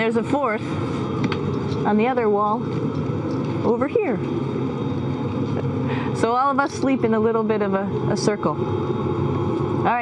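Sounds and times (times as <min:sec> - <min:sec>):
faint high whines: 0:00.0 - 0:10.0
ventilation fans humming: 0:00.0 - 0:10.0.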